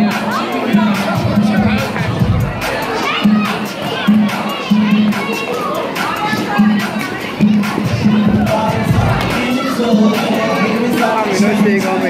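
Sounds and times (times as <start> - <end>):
children shouting and cheering: 0.0 - 12.0
loud music: 0.0 - 12.0.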